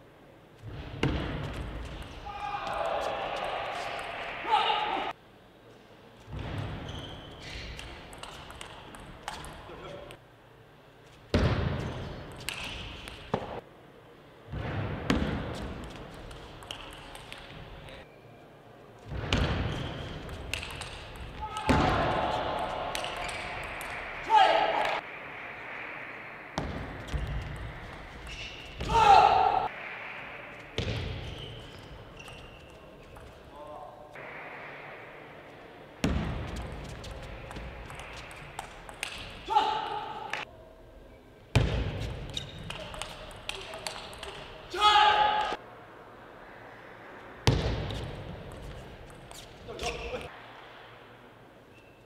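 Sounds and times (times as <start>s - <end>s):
loud shout: 2.2s - 5.2s, 24.2s - 25.0s, 28.8s - 29.7s, 39.5s - 40.3s, 44.7s - 45.6s
table tennis ball clicking: 7.8s - 9.6s, 15.8s - 17.6s, 20.2s - 21.8s, 42.2s - 44.5s.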